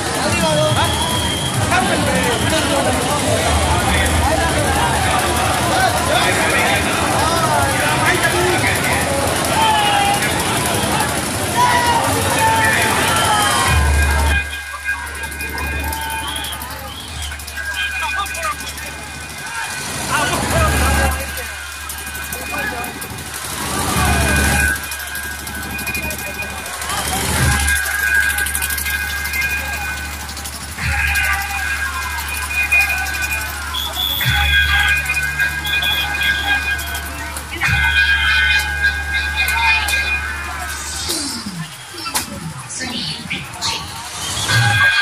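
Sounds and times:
crowd shouting and calling: 0:00.0 - 0:45.0
long steady high tone: 0:00.0 - 0:45.0
deep bass hum: 0:18.6 - 0:32.3.

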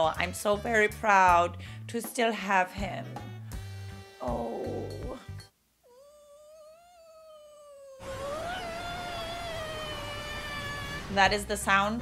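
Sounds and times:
woman saying awww: 0:05.9 - 0:10.5.

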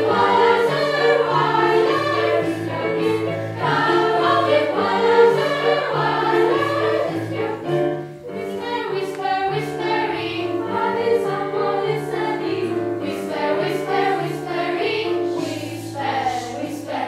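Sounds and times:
children's choir singing: 0:00.0 - 0:17.0
piano accompaniment: 0:00.0 - 0:17.0.

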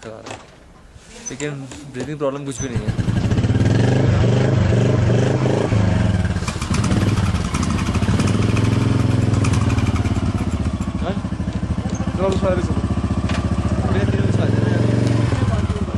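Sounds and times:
motorcycle engine running: 0:02.7 - 0:15.9.

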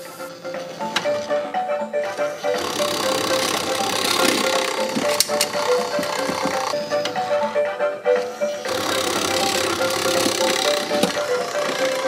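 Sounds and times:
cheerful tune: 0:00.0 - 0:12.0
claw mechanism whirring: 0:02.0 - 0:07.2, 0:08.4 - 0:12.0.

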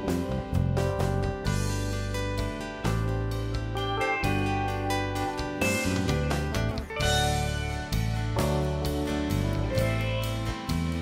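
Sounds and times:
instrumental guitar music: 0:00.0 - 0:11.0.

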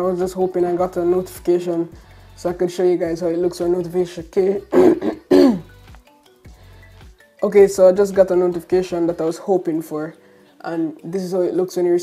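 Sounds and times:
man clearing his throat: 0:04.7 - 0:05.7.

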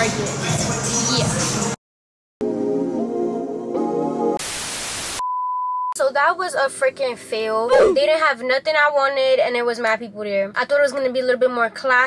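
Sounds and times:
loud static hiss: 0:04.4 - 0:05.2
woman talking: 0:06.0 - 0:12.0.

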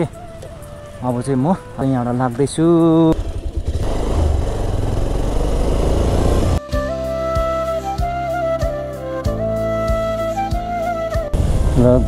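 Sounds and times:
flute music: 0:00.0 - 0:02.3, 0:06.6 - 0:12.0
motorcycle engine and road noise: 0:00.0 - 0:06.6, 0:11.3 - 0:12.0.

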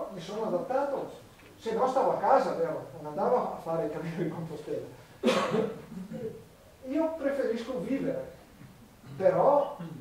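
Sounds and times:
sharp cough: 0:05.2 - 0:06.3.

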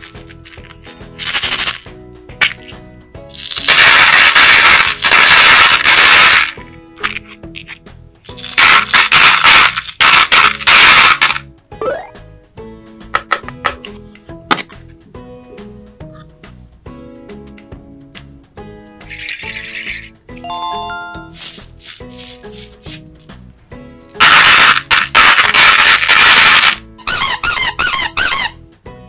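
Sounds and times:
candies rattling into plastic tub: 0:00.0 - 0:11.4, 0:19.1 - 0:20.1, 0:24.1 - 0:26.8
background music: 0:00.0 - 0:29.0
rubber squeaky ball squeaking: 0:25.6 - 0:28.6.

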